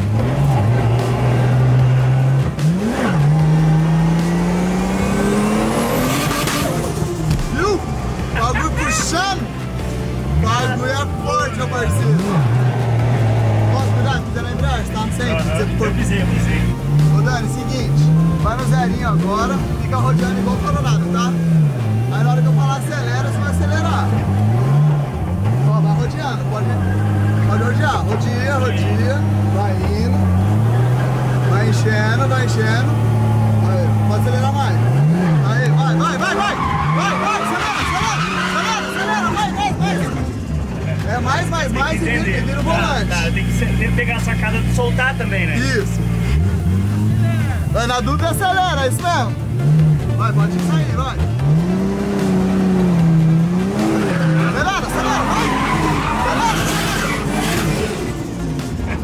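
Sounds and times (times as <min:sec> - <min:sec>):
car engine revving: 0:00.0 - 0:59.0
tyres squealing: 0:07.5 - 0:48.2, 0:51.4 - 0:59.0.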